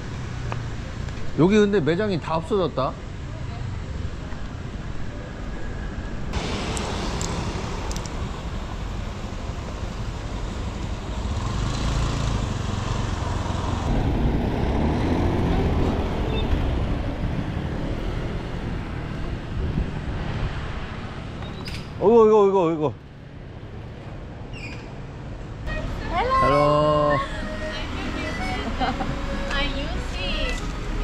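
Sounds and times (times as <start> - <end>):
street traffic: 0.0 - 31.0.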